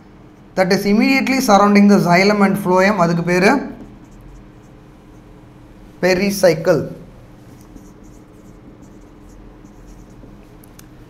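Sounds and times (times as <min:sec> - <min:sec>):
marker scratching on whiteboard: 0:03.8 - 0:05.4, 0:07.6 - 0:10.4.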